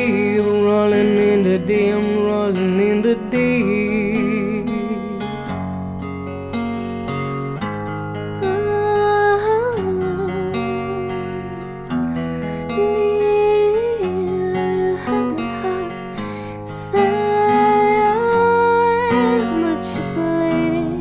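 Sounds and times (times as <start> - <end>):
plucked acoustic guitar: 0.0 - 21.0
woman singing with vibrato: 8.4 - 21.0.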